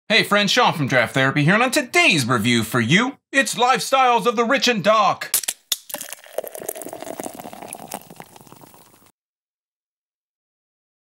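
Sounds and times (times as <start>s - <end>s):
carbonated liquid fizzing: 5.7s - 9.1s.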